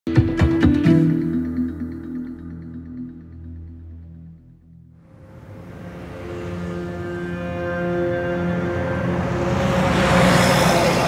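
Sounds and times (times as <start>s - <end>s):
sombre music chord: 5.0s - 10.4s
vehicle passing close by: 5.1s - 11.0s.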